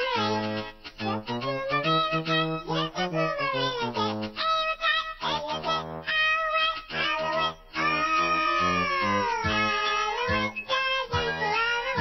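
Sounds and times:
person singing children's song: 0.0 - 12.0
bouncy bass accompaniment: 6.9 - 12.0.

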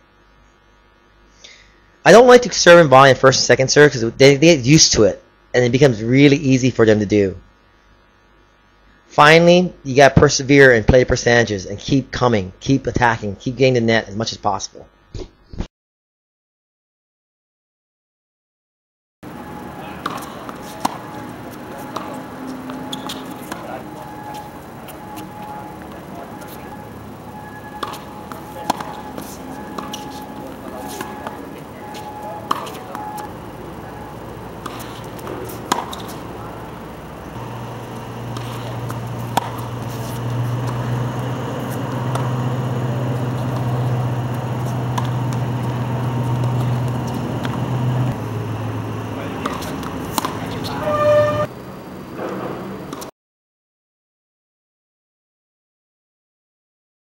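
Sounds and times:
steady low hum: 0.0 - 15.2, 19.2 - 53.1
tennis ball struck by racquets: 19.4 - 48.3, 49.2 - 50.9.

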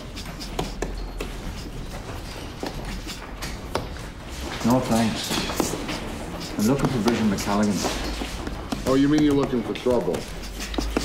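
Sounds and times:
scattered knocks and taps: 0.0 - 11.0.

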